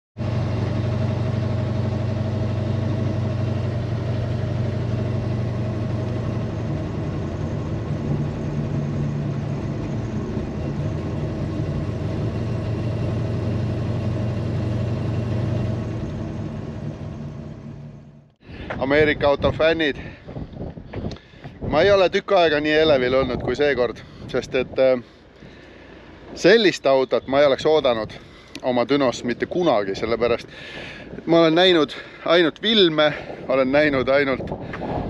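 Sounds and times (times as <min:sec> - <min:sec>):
car engine running from inside: 0:00.2 - 0:18.4.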